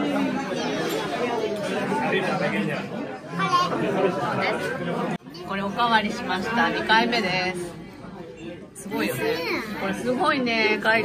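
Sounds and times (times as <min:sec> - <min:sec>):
restaurant chatter: 0:00.0 - 0:11.0.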